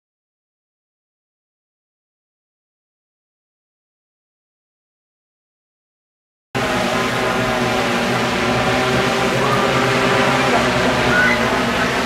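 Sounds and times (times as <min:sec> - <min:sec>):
sustained musical tones: 0:06.6 - 0:12.0.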